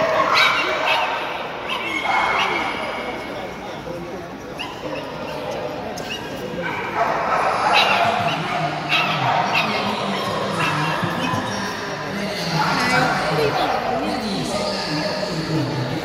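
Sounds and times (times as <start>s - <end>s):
dogs barking and yipping: 0.0s - 3.3s, 4.5s - 11.9s, 12.5s - 14.2s
crowd chatter in echoing hall: 0.0s - 16.0s.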